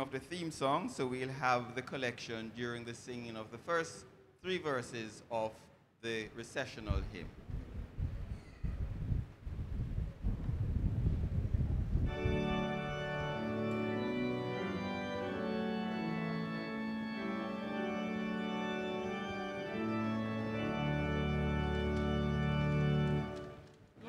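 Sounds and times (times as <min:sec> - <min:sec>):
low rumbling noise: 0:06.9 - 0:13.4
church organ playing chords: 0:12.1 - 0:23.6.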